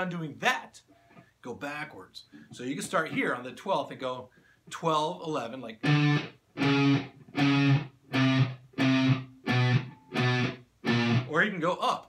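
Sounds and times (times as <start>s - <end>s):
electric guitar picking single notes: 5.8s - 11.3s.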